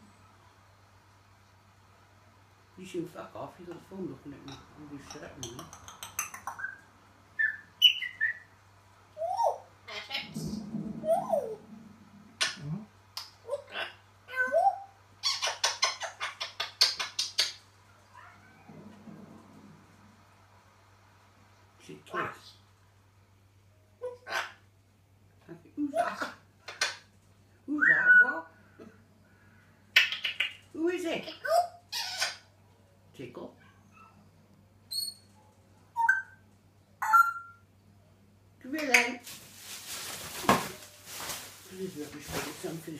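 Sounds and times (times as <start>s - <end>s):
parrot calls and mimicry: 5.0s - 10.4s, 11.0s - 11.6s, 13.2s - 18.6s, 24.0s - 24.7s, 26.0s - 27.1s, 27.8s - 28.6s, 29.9s - 32.6s, 34.9s - 37.8s
parrot whistling: 7.4s - 8.5s, 27.8s - 28.4s, 36.0s - 36.4s, 37.0s - 37.6s.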